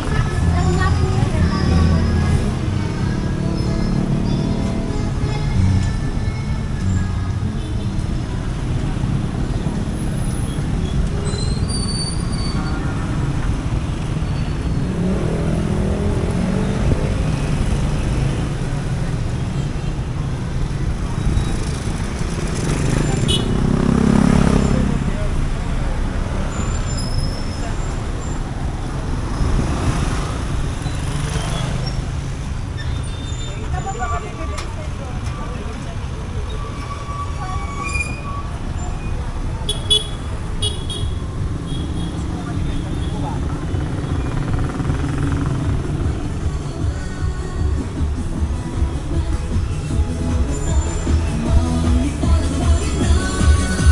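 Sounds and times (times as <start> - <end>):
motorcycle and car engines: 0.0 - 53.9
vehicles passing by: 0.0 - 53.9.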